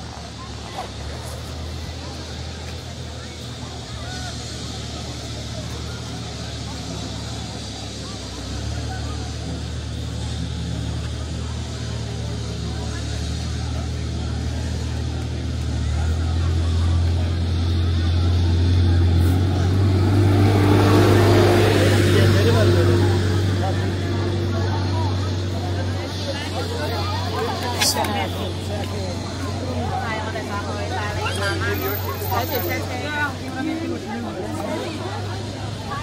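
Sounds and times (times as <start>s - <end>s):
people talking: 0.0s - 36.0s
vehicle engine humming: 0.0s - 36.0s.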